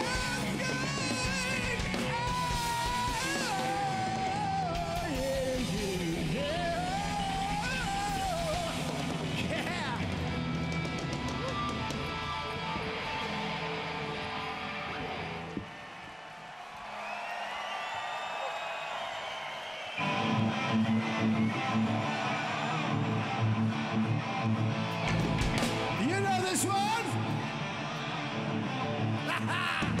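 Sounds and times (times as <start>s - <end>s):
heavy metal band playing live: 0.0s - 15.6s, 20.0s - 30.0s
crowd noise: 0.0s - 30.0s
electric guitar strumming: 20.0s - 30.0s
sung wail: 29.2s - 30.0s.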